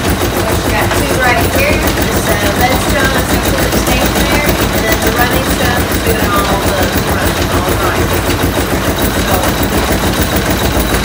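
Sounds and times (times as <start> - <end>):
mill machinery clattering: 0.0 - 11.0.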